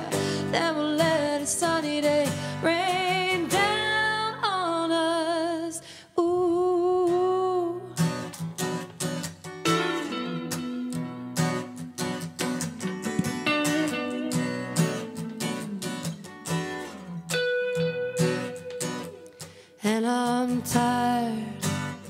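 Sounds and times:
strummed acoustic guitar: 0.0 - 4.4, 7.1 - 22.0
woman singing with vibrato: 0.0 - 8.0, 14.4 - 17.4, 19.8 - 22.0.

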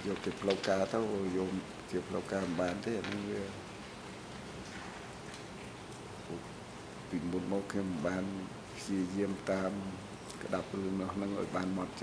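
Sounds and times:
microphone feed hiss: 0.0 - 12.0.

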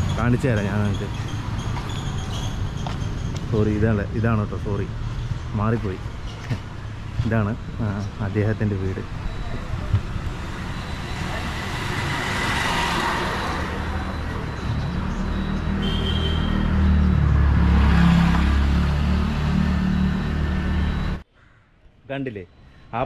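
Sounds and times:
motor vehicle passing: 9.2 - 21.2.

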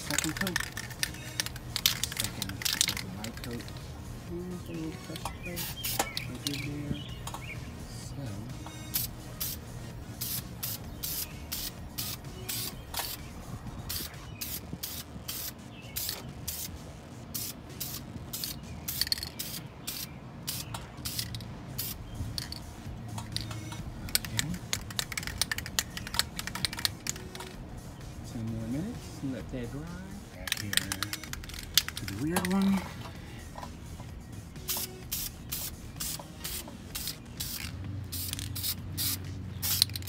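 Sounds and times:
aerosol spray can hissing: 8.9 - 13.3, 13.9 - 22.6, 34.6 - 40.0.

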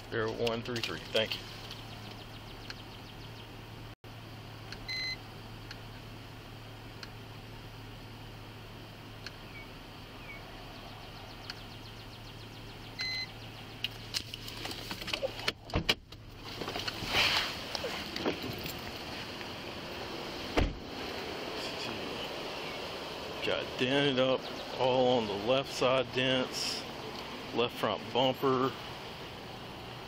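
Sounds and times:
car cabin hum: 0.1 - 27.1
clicks and rustling: 0.2 - 2.2.

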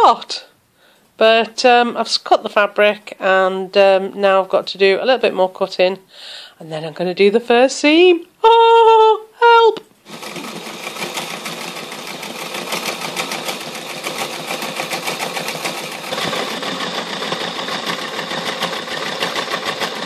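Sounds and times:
sewing machine stitching: 10.0 - 20.0.

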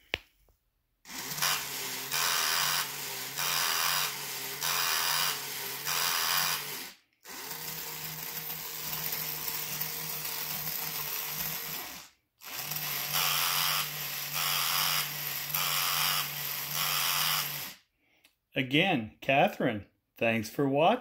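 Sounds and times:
toy motor whirring: 1.1 - 17.8.

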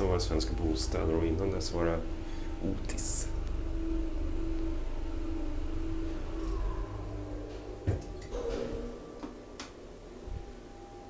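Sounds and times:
elevator hum and rumble: 0.0 - 11.0
brief tone: 2.1 - 11.0.

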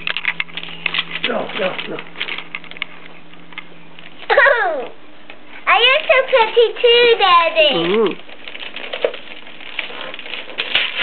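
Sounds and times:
wrapping paper crinkling: 0.0 - 4.4, 5.7 - 11.0.

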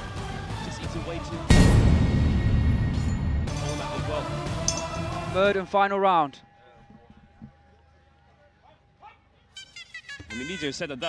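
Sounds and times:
reedy oboe melody: 9.5 - 11.0.

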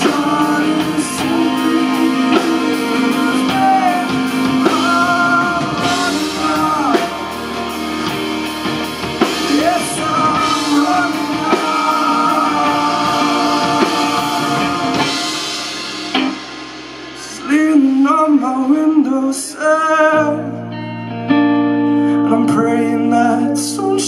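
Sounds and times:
man singing: 0.0 - 8.4, 9.2 - 15.7, 17.2 - 20.7, 22.0 - 24.0
rock band playing: 0.0 - 24.0.

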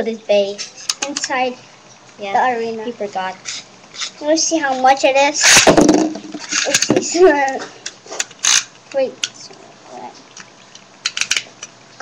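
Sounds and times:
plastic spinning tops clicking: 0.8 - 1.4, 5.4 - 9.4, 10.3 - 11.8.

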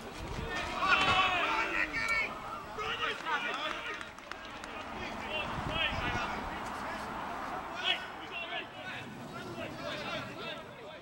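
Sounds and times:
shouts from players and spectators: 0.4 - 9.1.

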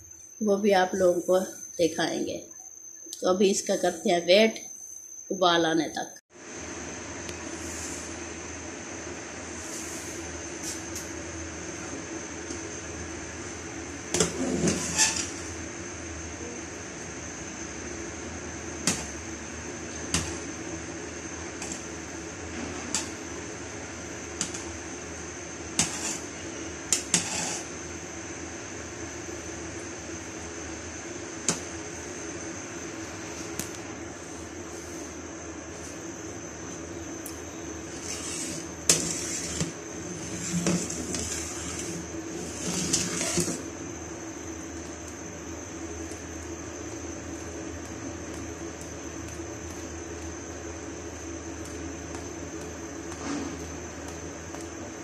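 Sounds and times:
hum with high whine: 0.0 - 55.0
ladle scraping pot: 25.8 - 26.3, 27.0 - 27.8, 37.9 - 43.6.

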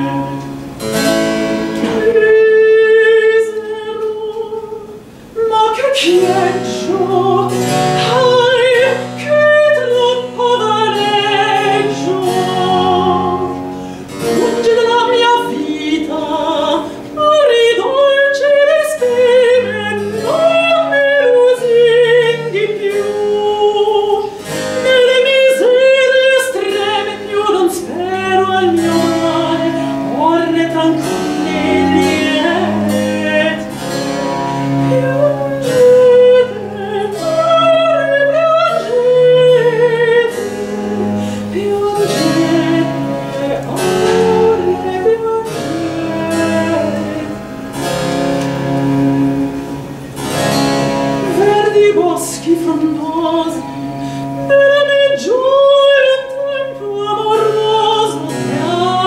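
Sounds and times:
woman singing with vibrato: 0.0 - 59.0
cello sustained bass notes: 6.0 - 59.0
harpsichord plucked chords: 25.7 - 59.0.

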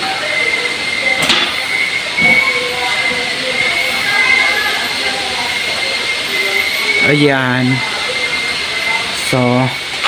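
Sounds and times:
high constant whine: 0.0 - 10.0
steady hissing noise: 0.0 - 10.0.

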